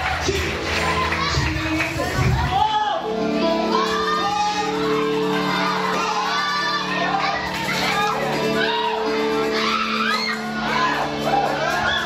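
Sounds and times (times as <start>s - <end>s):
amplified music: 0.0s - 12.0s.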